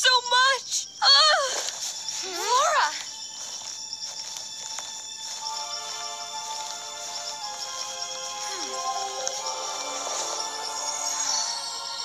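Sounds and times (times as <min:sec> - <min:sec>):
music of sustained held notes: 0:00.0 - 0:12.0.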